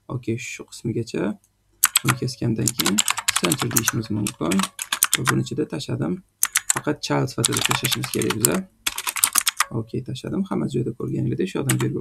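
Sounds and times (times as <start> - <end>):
typing on computer keyboard: 1.8 - 5.5, 6.4 - 9.7, 11.7 - 11.9.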